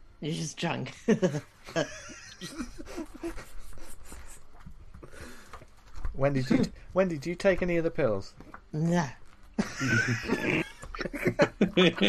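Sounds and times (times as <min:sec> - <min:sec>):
murmured voices: 0:09.8 - 0:12.0
person's wordless vocal noise: 0:10.3 - 0:12.0.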